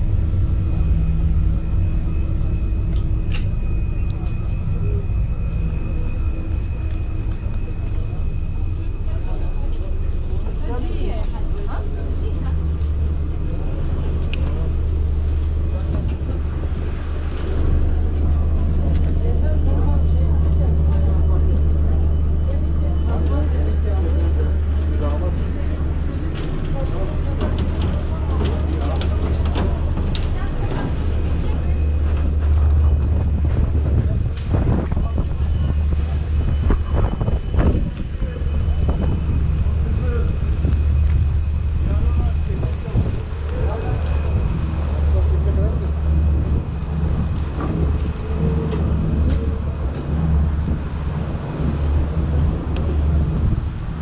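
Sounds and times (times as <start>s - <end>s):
ferry engines droning: 0.0s - 54.0s
people chattering: 3.9s - 54.0s.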